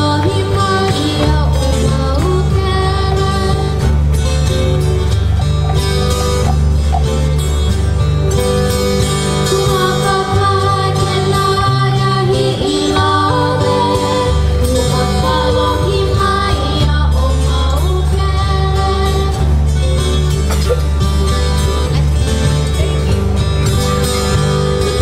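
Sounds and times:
acoustic guitar: 0.0 - 25.0
ukuleles playing: 0.0 - 25.0
person singing: 9.4 - 19.4.

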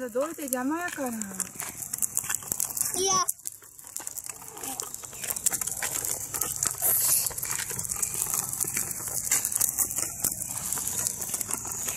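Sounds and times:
tricycle wheels rattling on asphalt: 0.0 - 11.9.

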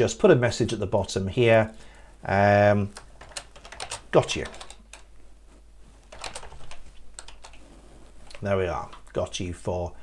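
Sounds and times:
computer keyboard key clicks: 6.1 - 7.6.

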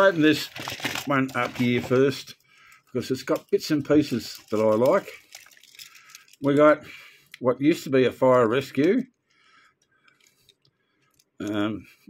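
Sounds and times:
soft plastic rubbing: 0.0 - 6.7
small faint clicks: 8.8 - 11.6.

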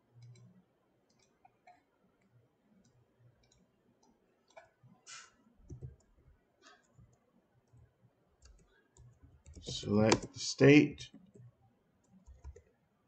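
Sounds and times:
keyboard and mouse clicks: 0.2 - 0.5, 1.1 - 1.9, 2.8 - 4.8, 5.6 - 7.8, 8.4 - 10.4, 11.1 - 12.8.

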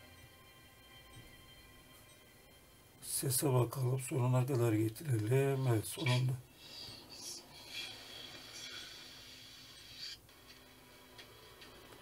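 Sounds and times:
tv series through laptop speakers: 0.0 - 12.0.

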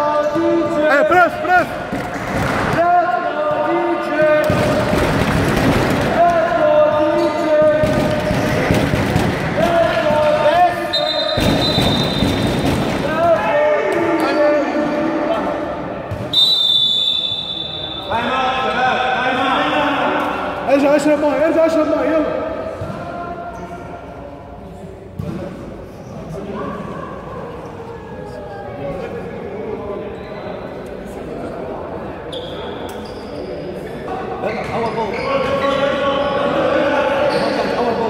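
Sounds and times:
voices shouting in a hall: 0.0 - 24.5
high whistle blowing: 10.9 - 12.6, 16.3 - 18.2.

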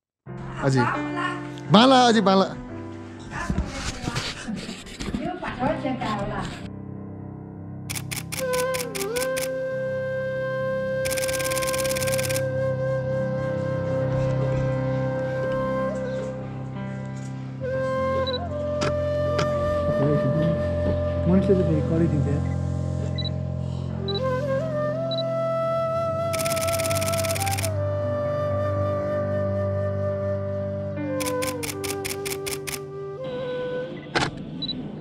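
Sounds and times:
camera shutter rapid burst: 7.9 - 9.6, 11.1 - 12.4, 26.4 - 27.7, 31.2 - 32.9
flute-like note over drone: 8.4 - 11.1, 12.5 - 16.8, 17.6 - 21.9, 24.0 - 26.6, 32.8 - 34.7.

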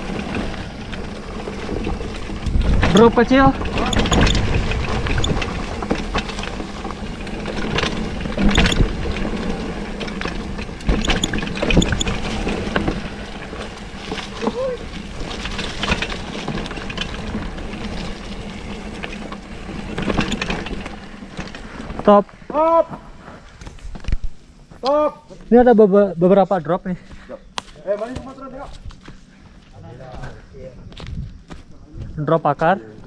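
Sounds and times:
wind rumbling on microphone: 0.0 - 22.1, 29.8 - 32.3
bike knocks and rattles: 0.0 - 24.9, 27.7 - 29.3
bike tyres rolling on dirt: 0.0 - 33.0.

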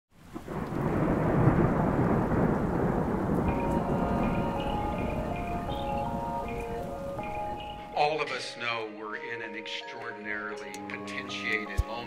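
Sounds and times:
heavy rain: 0.1 - 8.0
low rumble of thunder: 0.3 - 8.0.

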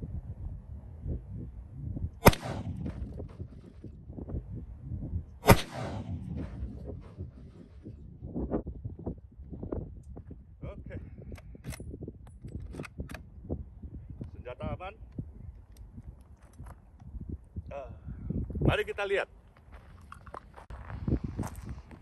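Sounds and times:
wind rumble on microphone: 0.0 - 22.0
rifle shots with echo: 2.2 - 3.8, 5.4 - 7.6.

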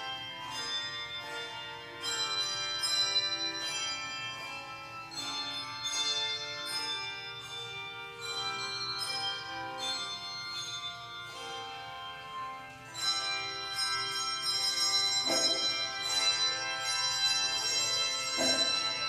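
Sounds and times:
handbell choir playing: 0.0 - 19.0.

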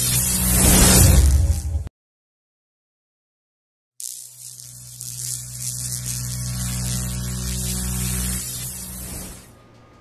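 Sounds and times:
static hiss: 0.0 - 1.6, 4.0 - 9.5
low electric hum: 4.0 - 10.0.

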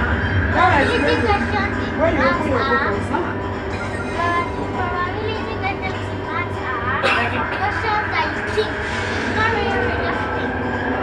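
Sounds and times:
train running hum: 0.0 - 11.0
people talking: 0.5 - 10.6.

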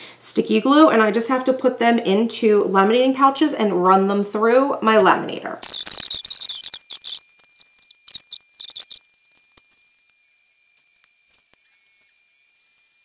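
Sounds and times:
plastic pouch crinkling: 5.6 - 10.2
faint high whine: 5.6 - 13.0.

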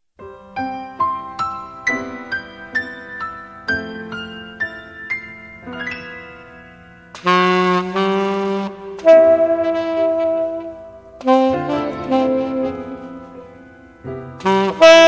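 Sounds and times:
tenor saxophone jazz ballad: 7.1 - 15.0.

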